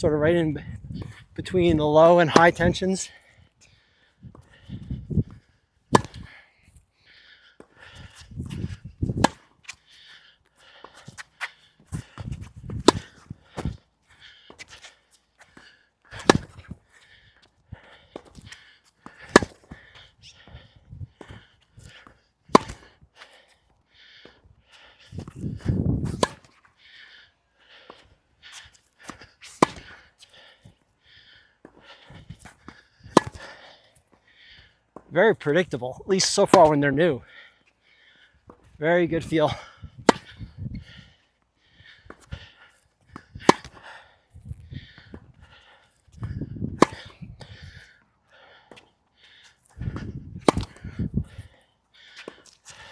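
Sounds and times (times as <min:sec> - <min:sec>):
racket striking tennis ball: 0:02.2 - 0:02.7, 0:05.9 - 0:06.3, 0:08.5 - 0:09.6, 0:12.7 - 0:13.8, 0:16.2 - 0:16.7, 0:19.2 - 0:19.8, 0:22.5 - 0:22.9, 0:26.0 - 0:26.6, 0:29.0 - 0:30.0, 0:32.6 - 0:33.5, 0:36.2 - 0:36.8, 0:40.0 - 0:40.5, 0:43.1 - 0:43.8, 0:46.7 - 0:47.2, 0:49.9 - 0:50.9
tennis ball bounces: 0:02.3 - 0:02.7, 0:05.9 - 0:06.3, 0:08.5 - 0:09.5, 0:12.7 - 0:13.8, 0:16.2 - 0:16.6, 0:19.0 - 0:19.8, 0:22.5 - 0:22.9, 0:26.0 - 0:26.6, 0:29.0 - 0:30.0, 0:32.4 - 0:33.5, 0:36.3 - 0:36.8, 0:40.0 - 0:40.4, 0:43.1 - 0:43.8, 0:46.8 - 0:47.5, 0:49.9 - 0:50.9.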